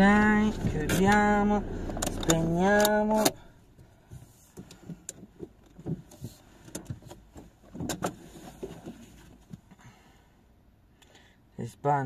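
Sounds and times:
soft knocks and clicks in car cabin: 0.0 - 9.8.

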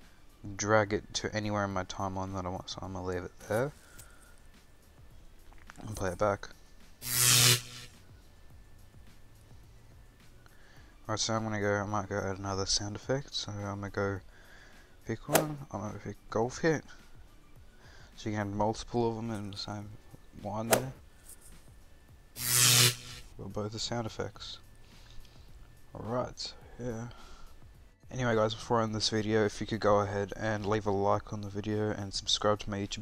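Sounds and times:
electric buzz with crackling hiss: 3.4 - 8.2, 22.3 - 26.6
loud electric buzz with hiss: 7.0 - 8.0, 22.4 - 23.4.

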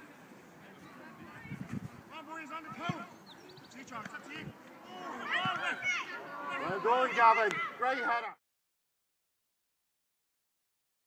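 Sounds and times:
voices shouting: 2.1 - 8.4.

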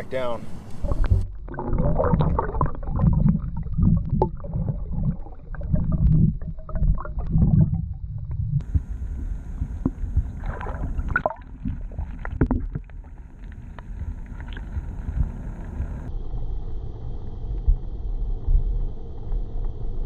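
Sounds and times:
muffled water rumble and gurgling: 0.0 - 20.0
water splashing: 0.5 - 16.1.

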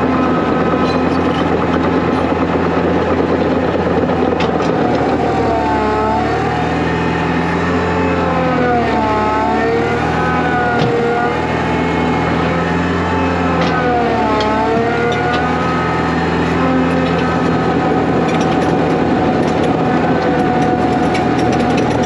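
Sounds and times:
diesel engine under load: 0.0 - 22.0
wavering whine: 0.0 - 22.0.

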